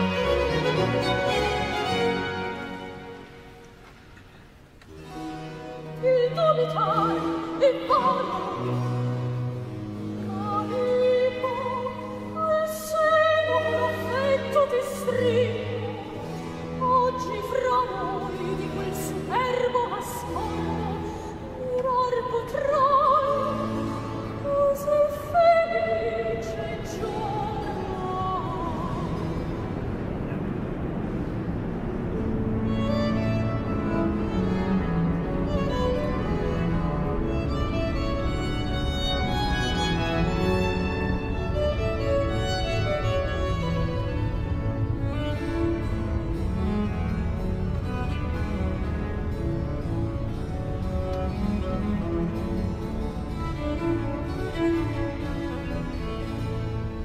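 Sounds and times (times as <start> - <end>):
low cellos and double bass: 0.0 - 57.0
string ensemble chord: 0.0 - 57.0
female opera singing: 5.8 - 9.0, 10.1 - 29.3.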